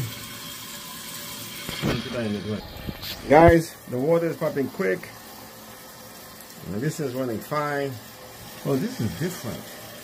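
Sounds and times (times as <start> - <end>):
water filling toilet tank: 0.0 - 10.0.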